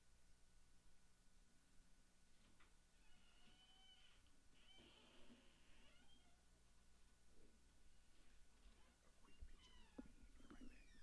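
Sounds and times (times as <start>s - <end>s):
faint high-pitched tones: 0.0s - 11.0s.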